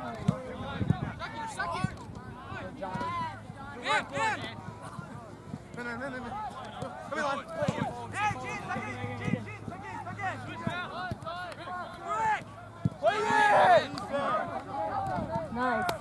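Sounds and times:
players and spectators shouting: 0.0 - 16.0.

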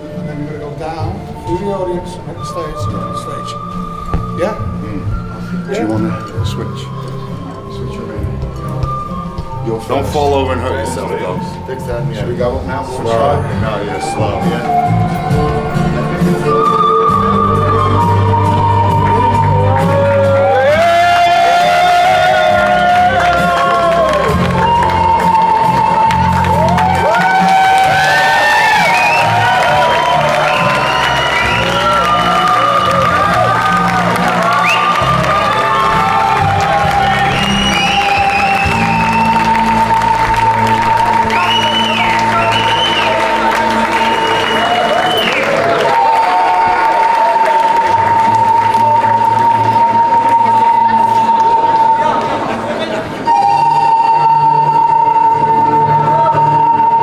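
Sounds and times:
crowd cheering and applauding: 13.0 - 57.0.

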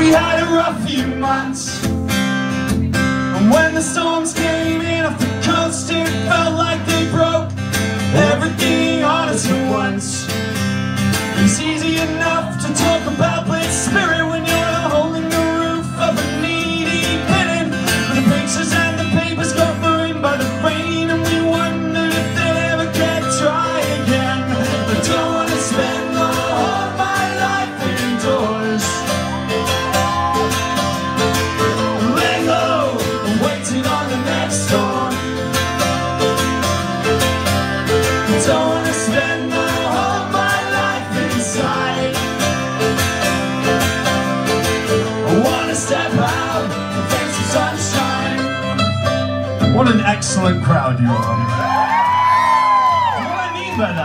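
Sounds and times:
man singing: 0.0 - 2.0, 3.2 - 10.3, 11.3 - 30.3, 31.7 - 36.4, 37.8 - 43.0, 45.0 - 48.9
mandolin playing: 0.0 - 51.1
strummed acoustic guitar: 0.0 - 51.5.

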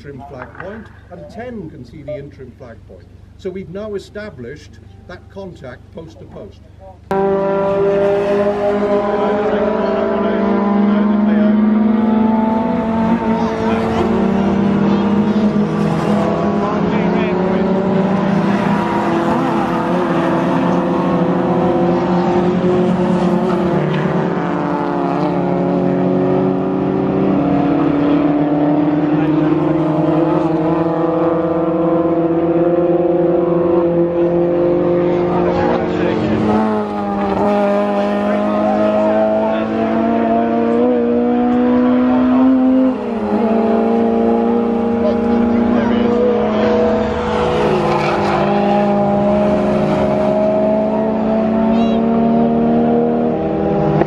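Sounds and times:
race car engines passing: 0.0 - 54.0.

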